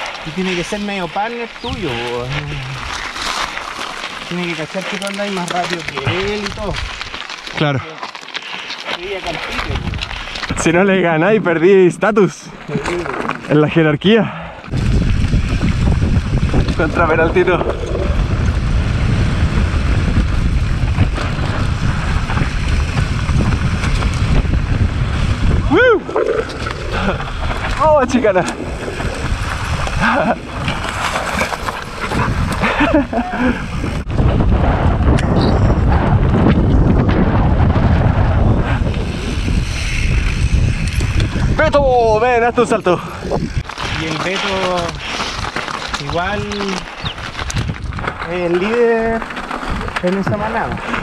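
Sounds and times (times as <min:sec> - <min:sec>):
bike tyres crunching on gravel: 0:00.0 - 0:13.8, 0:14.8 - 0:35.0, 0:36.1 - 0:51.0
wind buffeting microphone: 0:09.0 - 0:11.6, 0:14.7 - 0:51.0.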